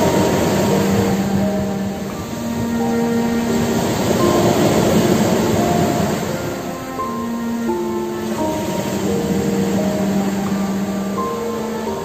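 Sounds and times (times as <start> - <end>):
ocean surf: 0.0 - 12.0
slow music of held notes: 0.0 - 12.0.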